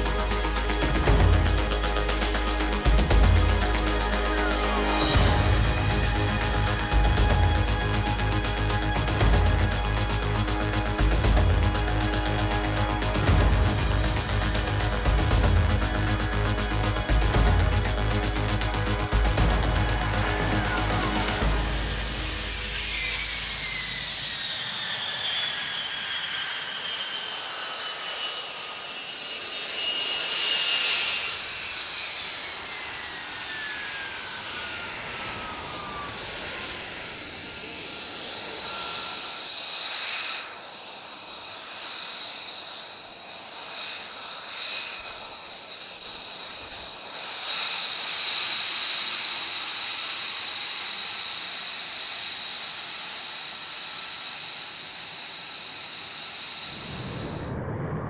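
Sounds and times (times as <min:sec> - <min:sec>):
rushing exhaust noise: 0:00.0 - 0:24.8, 0:54.6 - 0:58.0
jet engine whine: 0:00.0 - 0:58.0.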